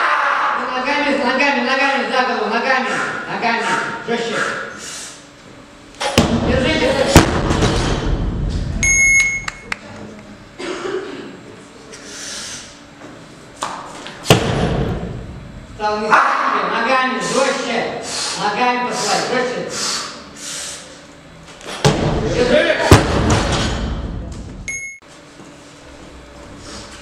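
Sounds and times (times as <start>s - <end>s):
high-pitched electronic beep: 8.8s - 9.7s, 24.7s - 25.0s.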